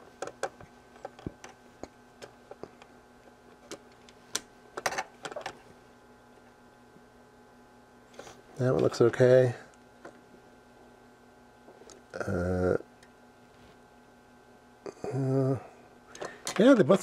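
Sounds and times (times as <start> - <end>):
faint steady hum: 0.0 - 17.0.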